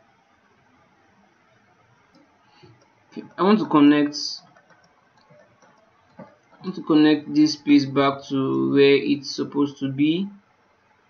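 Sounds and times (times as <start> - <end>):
person speaking: 3.2 - 5.4, 6.6 - 10.4
computer mouse clicks: 4.4 - 6.8.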